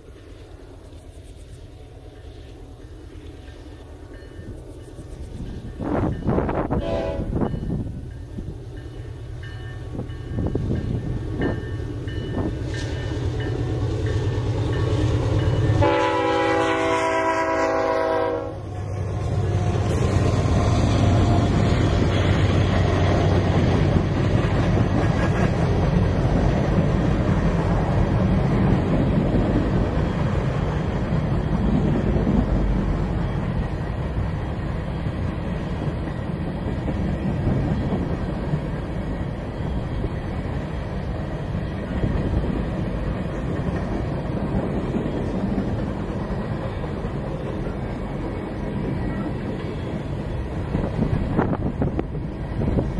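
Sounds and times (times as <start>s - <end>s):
diesel locomotive engines running: 0.0s - 52.9s
train wheels rumbling on rail: 0.0s - 52.9s
locomotive horn blast: 6.4s - 7.5s, 15.7s - 18.7s.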